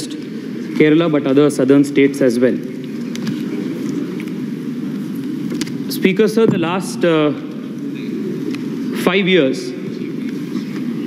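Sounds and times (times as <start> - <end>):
murmur of crowd chatter: 0.0 - 11.0.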